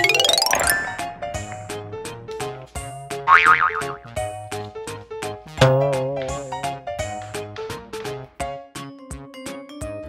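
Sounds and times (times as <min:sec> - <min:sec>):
plucked background music: 0:00.0 - 0:01.9, 0:05.5 - 0:08.0
cartoon boing sound effect: 0:03.3 - 0:04.0, 0:05.5 - 0:06.6.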